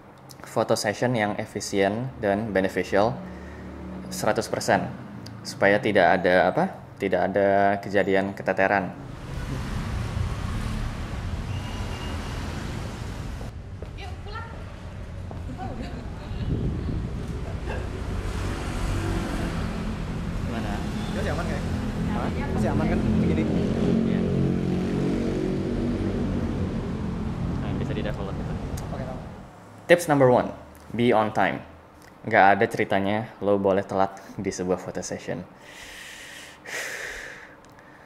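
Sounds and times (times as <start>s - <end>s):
vehicle engine humming: 8.9s - 29.9s
wind buffeting microphone: 12.9s - 18.5s.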